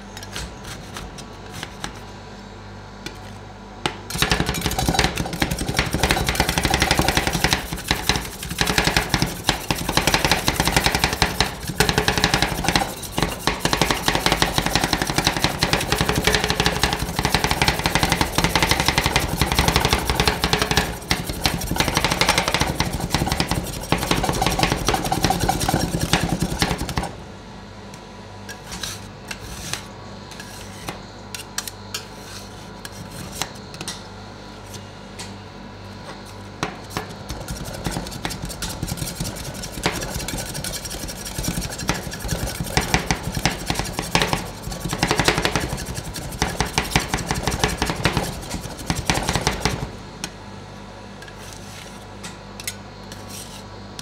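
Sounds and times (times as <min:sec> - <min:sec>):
spatulas tapping and scraping: 0:03.9 - 0:27.1, 0:36.6 - 0:49.9
spatulas chopping on steel plate: 0:04.1 - 0:27.1, 0:36.6 - 0:49.9.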